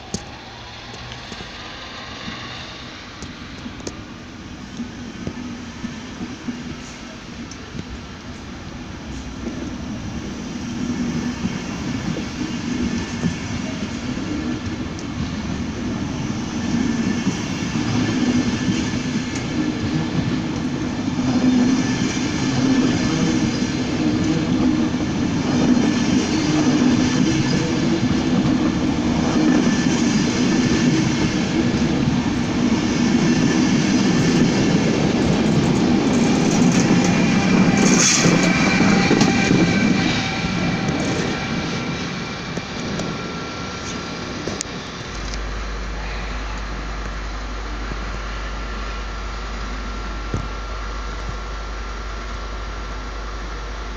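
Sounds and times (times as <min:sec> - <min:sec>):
electric locomotive whine: 0:00.0 - 0:53.9
train wheels rumbling on rails: 0:00.0 - 0:53.9.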